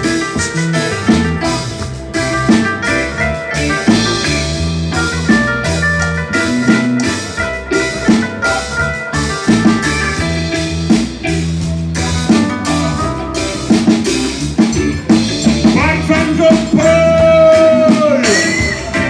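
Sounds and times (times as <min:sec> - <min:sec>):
drum kit: 0:00.0 - 0:19.0
keyboard playing chords and melody: 0:00.0 - 0:19.0
low bass line: 0:00.0 - 0:19.0.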